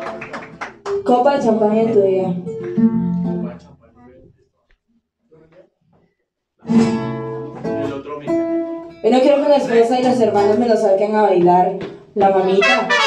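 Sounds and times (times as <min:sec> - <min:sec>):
guitars strumming: 0:00.0 - 0:03.9, 0:06.6 - 0:13.0.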